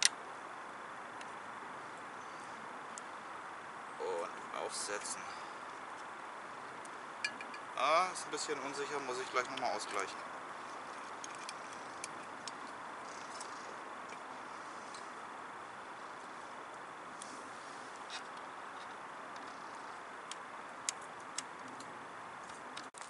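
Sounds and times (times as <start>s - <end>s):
burning wood crackles: 0.0s - 23.0s
camp stove flame rushing: 9.8s - 23.0s.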